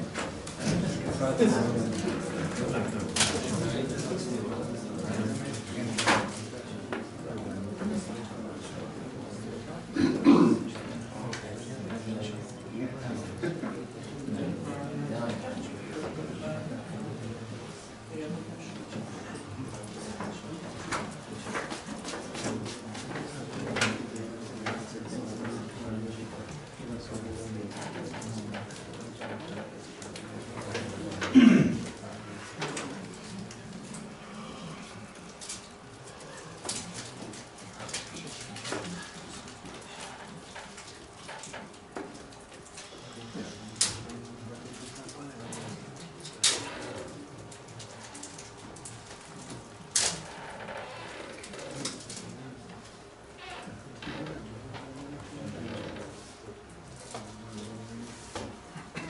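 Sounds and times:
murmur of voices: 0:00.0 - 0:59.0.

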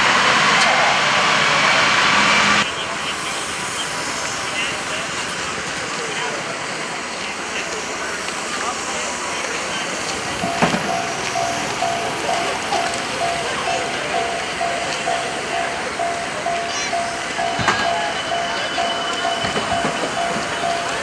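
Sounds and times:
noisy background: 0:00.0 - 0:21.0
level crossing bell beeping: 0:10.0 - 0:21.0.

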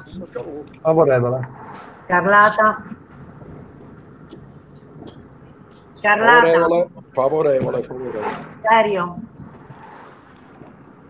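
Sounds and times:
microphone background noise: 0:00.0 - 0:11.0.

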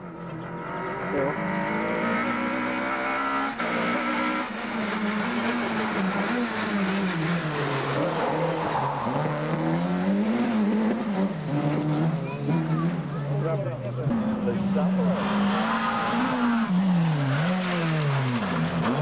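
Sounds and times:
rally car engine revving: 0:00.0 - 0:19.0.

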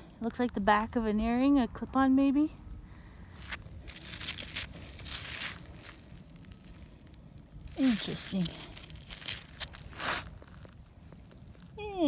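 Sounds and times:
scratchy rustling: 0:03.4 - 0:11.8.

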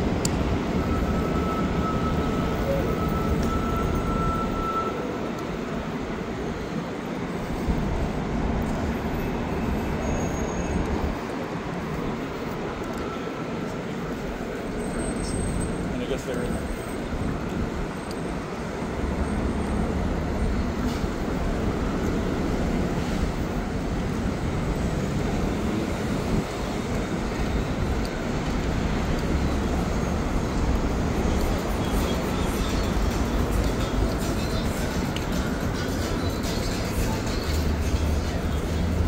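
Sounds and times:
city street traffic: 0:00.0 - 0:39.0.

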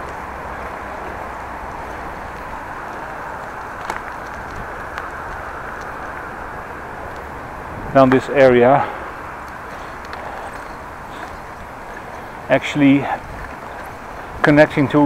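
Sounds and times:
bicycle rushing along street: 0:00.0 - 0:15.0
faint clicks: 0:01.7 - 0:06.3, 0:09.4 - 0:12.2.

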